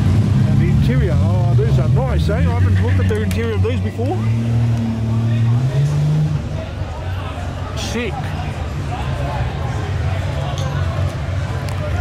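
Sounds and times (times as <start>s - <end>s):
car engine revving: 0.0s - 7.0s.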